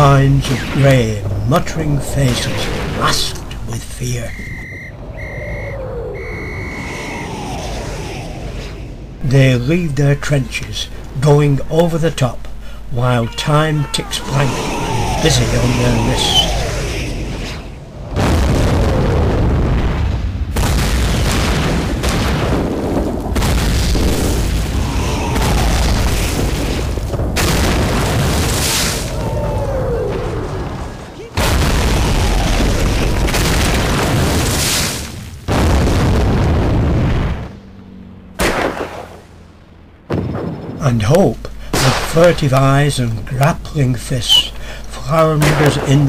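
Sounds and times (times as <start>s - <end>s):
low rumble of battle: 0.0s - 46.0s
whistle blasts: 4.2s - 7.8s
long falling whistles: 4.2s - 9.0s
artillery shell blasts: 18.1s - 24.8s, 38.4s - 39.2s, 40.1s - 42.8s, 45.3s - 46.0s.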